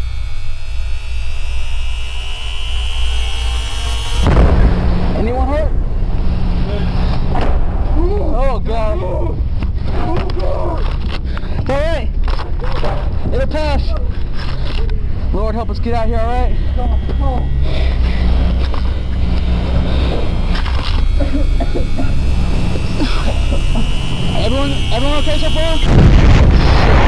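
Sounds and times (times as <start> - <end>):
thin high steady tone: 0.0 - 7.2, 14.7 - 26.0
loud low rumble: 0.0 - 10.0, 14.9 - 27.0
indistinct voices: 14.7 - 26.0.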